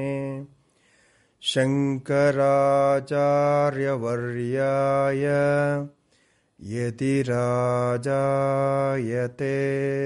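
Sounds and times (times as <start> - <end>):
man chanting: 0.0 - 0.6, 1.4 - 6.0, 6.6 - 10.0.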